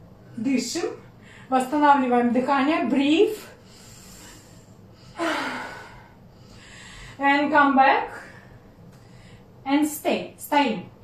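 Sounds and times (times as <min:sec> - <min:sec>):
woman sighing: 0:05.2 - 0:06.1.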